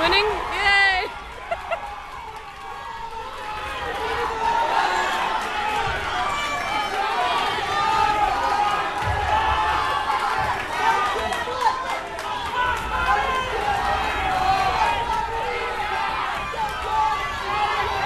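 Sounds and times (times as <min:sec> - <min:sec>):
spectators calling out and chattering: 0:00.0 - 0:18.0.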